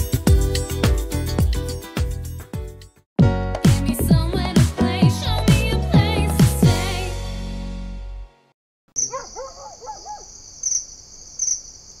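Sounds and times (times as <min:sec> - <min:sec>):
cricket trill: 0:09.0 - 0:12.0.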